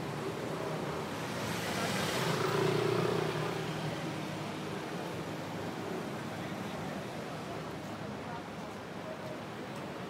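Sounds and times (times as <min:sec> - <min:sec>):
background traffic: 0:00.0 - 0:10.0.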